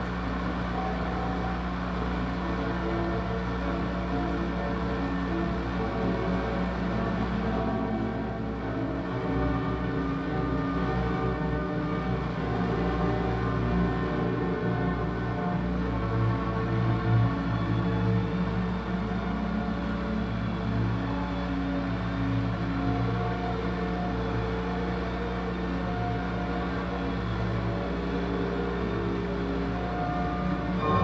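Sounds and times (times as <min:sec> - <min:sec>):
electronic music with low tones: 0:00.0 - 0:31.0.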